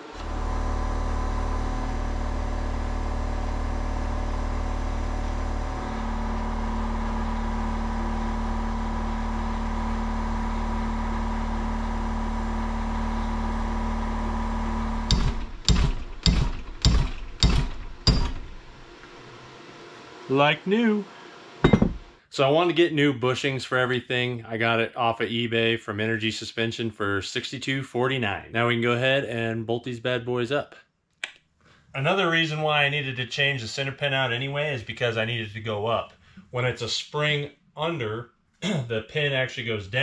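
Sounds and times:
power tool motor running: 0.0s - 19.3s
sharp knocks: 15.1s - 18.7s, 21.6s - 22.1s.

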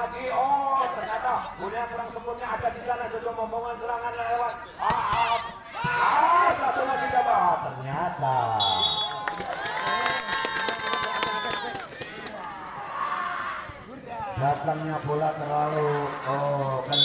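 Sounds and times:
spectators shouting and cheering: 4.8s - 17.0s
rapid clapping: 9.1s - 12.7s.

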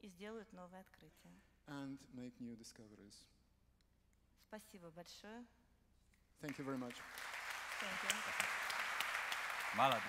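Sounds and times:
audience applause: 6.5s - 10.0s.

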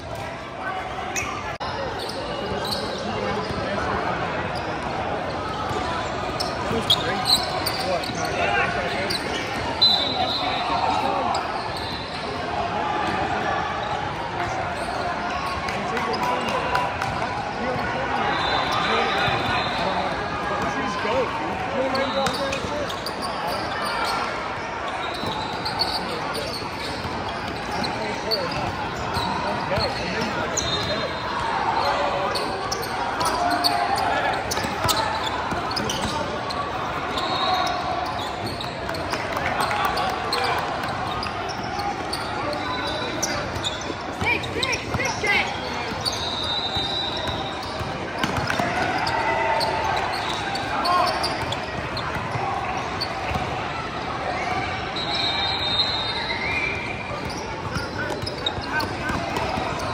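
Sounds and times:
murmur of voices: 0.0s - 59.9s
sneaker squeaks: 1.0s - 13.2s, 13.8s - 59.9s.

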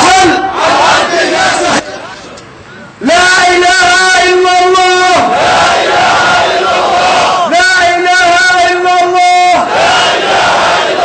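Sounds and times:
person shouting protest chants: 0.0s - 1.9s, 3.0s - 10.6s.

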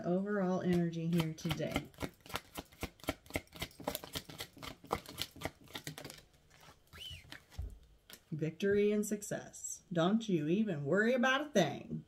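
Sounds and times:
deck of cards shuffling: 0.6s - 8.4s.

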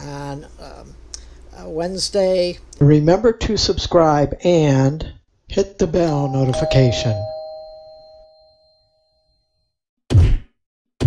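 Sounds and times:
bell chime: 6.1s - 9.4s.

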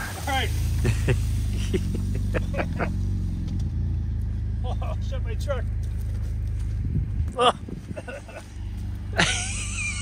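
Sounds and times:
engine running: 0.0s - 10.0s
man exclaiming oh: 7.4s - 7.6s.

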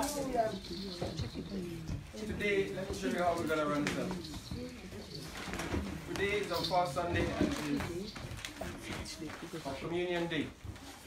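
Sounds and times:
faint low voices in a room: 0.0s - 11.0s.

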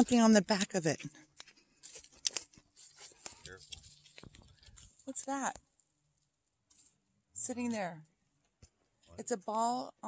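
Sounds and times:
footsteps on dirt trail: 0.6s - 5.1s.

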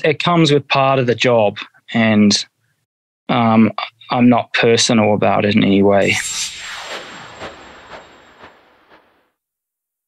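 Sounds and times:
noisy swell sting: 6.0s - 9.3s.

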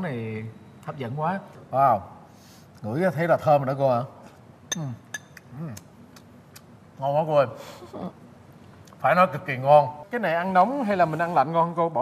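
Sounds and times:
ceramic spoon clinking on bowl: 4.7s - 5.4s.

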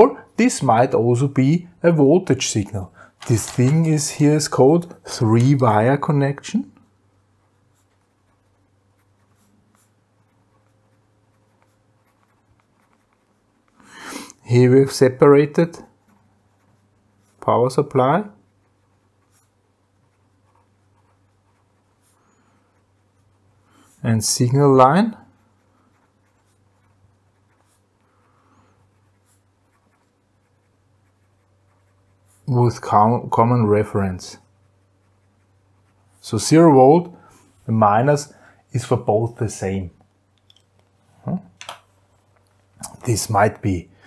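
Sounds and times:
faint low hum: 0.0s - 44.0s
pen scratching on paper: 7.3s - 13.8s, 15.7s - 24.0s, 25.1s - 32.9s, 33.8s - 36.2s.

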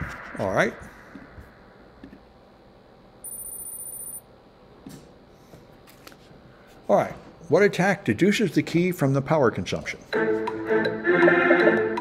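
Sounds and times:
high-pitched electronic tone: 3.2s - 4.2s.

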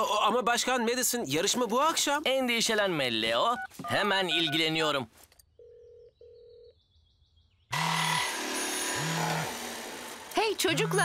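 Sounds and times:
low buzzing phone ring: 5.6s - 6.8s.

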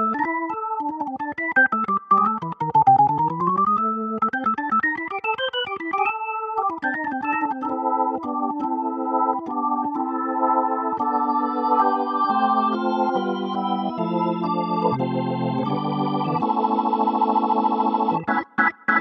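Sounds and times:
keyboard playing organ sound: 0.0s - 19.0s.

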